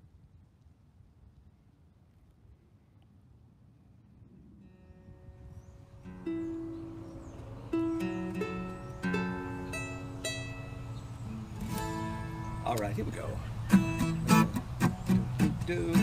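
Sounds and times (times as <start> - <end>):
acoustic guitar: 6.0 - 16.0
mandolin-like string instrument: 6.1 - 16.0.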